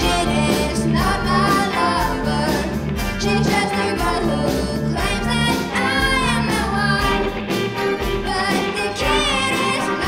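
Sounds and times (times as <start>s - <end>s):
wind band playing pop arrangement: 0.0s - 10.0s.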